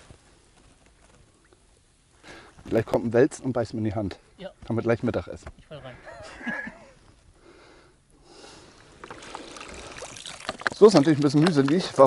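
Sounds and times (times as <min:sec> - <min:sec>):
water dripping: 0:08.7 - 0:12.0
stream water splashing and trickling: 0:08.8 - 0:12.0.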